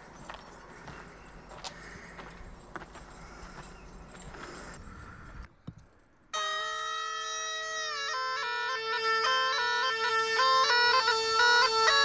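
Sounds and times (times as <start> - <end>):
bagpipe melody: 6.3 - 12.0.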